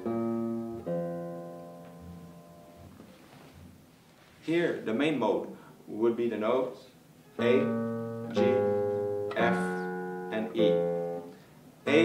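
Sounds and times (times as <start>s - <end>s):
guitar plucked notes: 0.0s - 3.8s, 7.4s - 12.0s
man talking: 4.4s - 10.9s.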